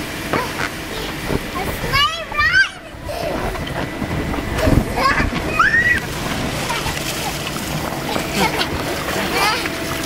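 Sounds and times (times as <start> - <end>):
steady rushing water: 0.0 - 10.0
water splashing: 0.0 - 10.0
children calling out: 0.3 - 9.8.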